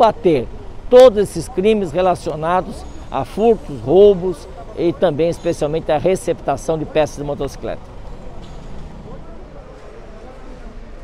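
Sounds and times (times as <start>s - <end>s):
faint voices: 0.0s - 11.0s
low traffic rumble: 0.0s - 11.0s.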